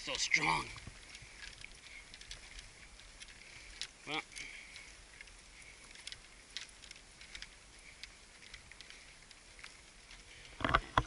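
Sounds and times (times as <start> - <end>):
man talking: 0.0 - 0.8, 4.0 - 4.4.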